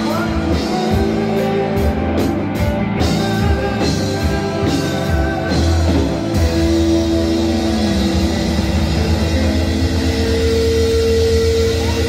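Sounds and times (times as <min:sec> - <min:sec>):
distorted electric guitars feedback: 0:00.0 - 0:12.0
low bass rumble: 0:00.7 - 0:12.0.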